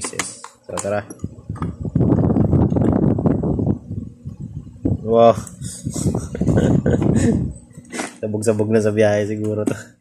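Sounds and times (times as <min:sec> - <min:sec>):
man laughing: 0:05.6 - 0:08.2.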